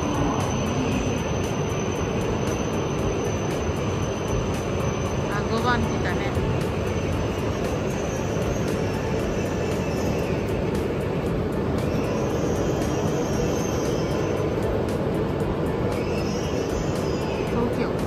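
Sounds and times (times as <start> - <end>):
train wheels rumbling: 0.0 - 18.0.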